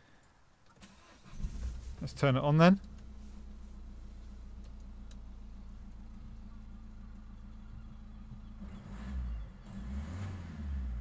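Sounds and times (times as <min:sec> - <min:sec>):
diesel engine idling: 0:01.0 - 0:09.7
low rumbling: 0:01.3 - 0:11.0.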